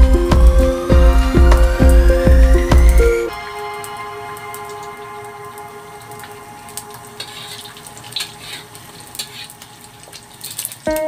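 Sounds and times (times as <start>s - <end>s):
egg sizzling in oil: 0.0s - 11.0s
spatula scraping and tapping pan: 7.2s - 9.7s.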